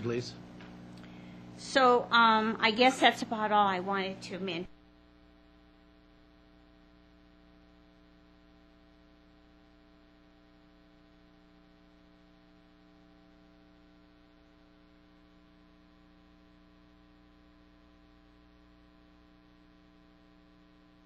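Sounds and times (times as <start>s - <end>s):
steady electrical hum: 0.0s - 21.0s.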